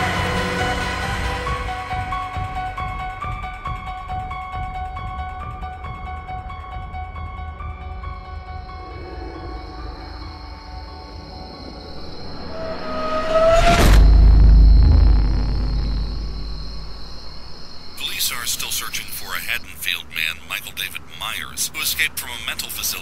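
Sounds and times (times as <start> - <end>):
horror film score: 0.0 - 23.0
loud low boom: 13.6 - 17.7.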